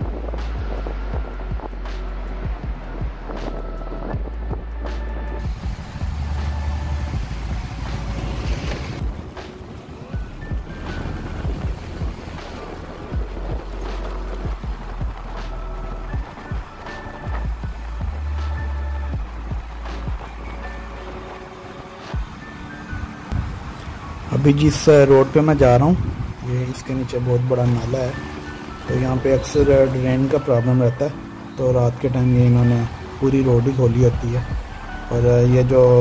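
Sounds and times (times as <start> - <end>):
faint background music: 0.0 - 36.0
motorbike road noise: 0.0 - 36.0
street traffic: 0.0 - 36.0
wind rumble on microphone: 0.0 - 36.0.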